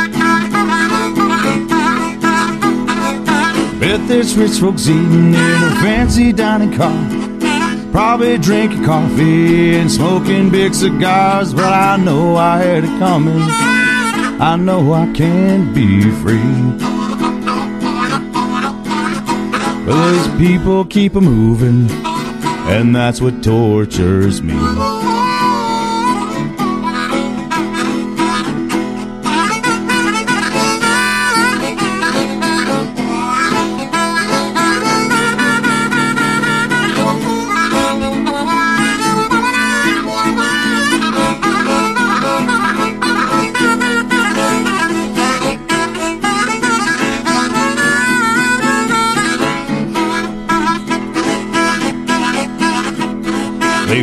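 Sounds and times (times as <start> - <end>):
harmonica solo: 0.0 - 54.0
strummed acoustic guitar: 0.0 - 54.0.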